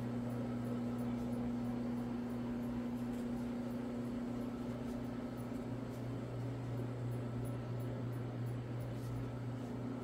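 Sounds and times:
floor machine motor humming: 0.0 - 10.0.

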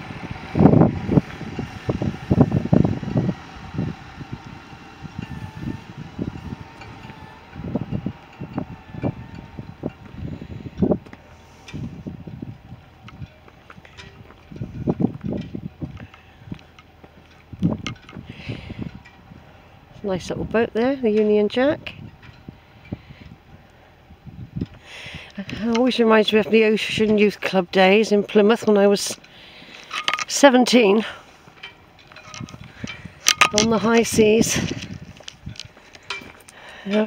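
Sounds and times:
faint steady hum: 0.0 - 37.0
footsteps on gravel: 33.5 - 36.8.

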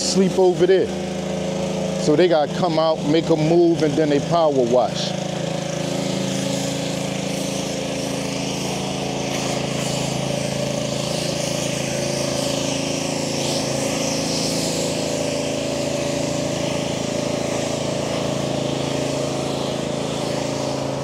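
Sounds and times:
electric bike motor humming: 0.0 - 21.0.

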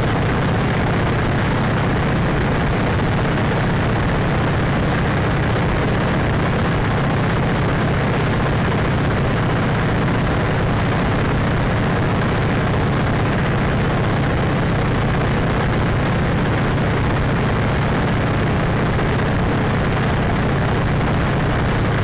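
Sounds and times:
biplane engine drone: 0.0 - 22.0.

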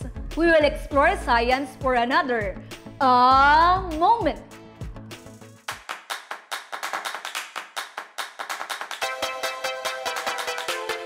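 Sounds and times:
rapid sharp clap-like hits: 5.6 - 11.0.

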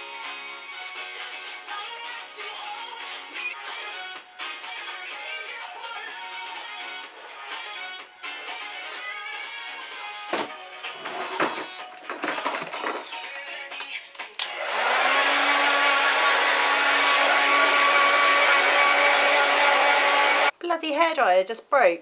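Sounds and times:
hair dryer running: 14.4 - 20.5.

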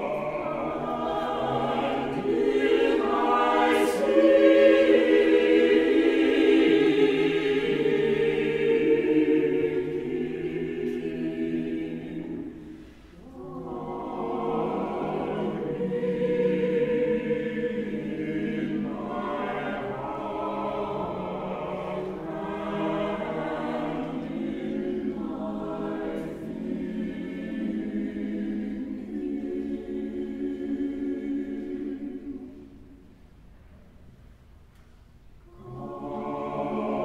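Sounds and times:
church choir singing: 0.0 - 33.2, 35.4 - 37.0.

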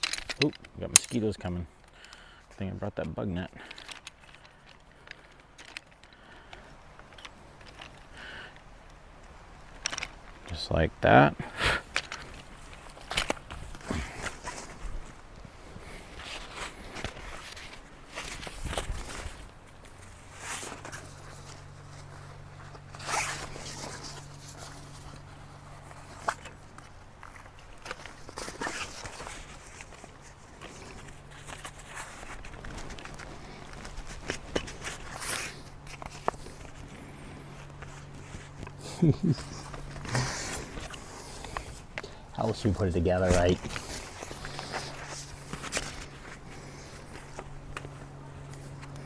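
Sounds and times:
frame poles clicking and rattling: 0.0 - 10.7, 11.7 - 49.0
steady low hum: 0.0 - 49.0
nylon fabric rustling: 12.2 - 41.9.

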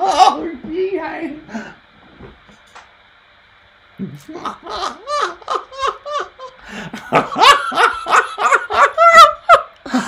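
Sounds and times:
man laughing hard: 4.1 - 10.0.

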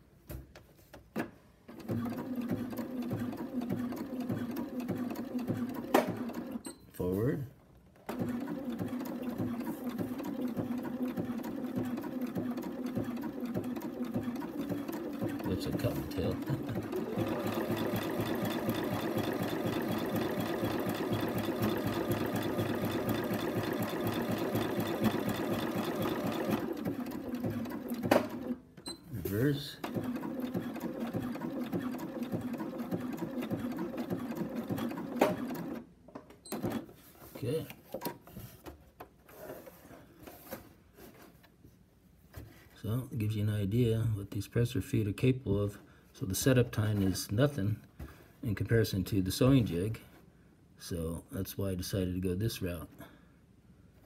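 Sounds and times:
sewing machine stitching: 1.7 - 6.6, 8.0 - 28.6, 29.3 - 35.9, 36.5 - 36.9
sewing machine clicks: 8.0 - 28.6, 29.8 - 35.8.

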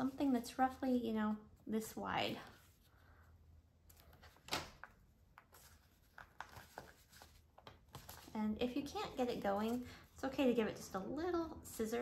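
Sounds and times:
paper rustling: 3.9 - 10.1.

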